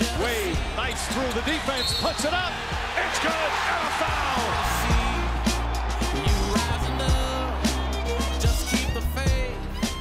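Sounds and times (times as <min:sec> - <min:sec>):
arena crowd noise: 0:00.0 - 0:09.3
excited voices: 0:02.2 - 0:08.8.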